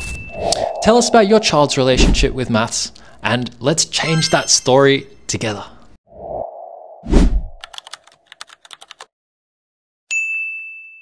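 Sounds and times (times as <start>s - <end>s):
low thump with falling swish: 6.3s - 7.6s.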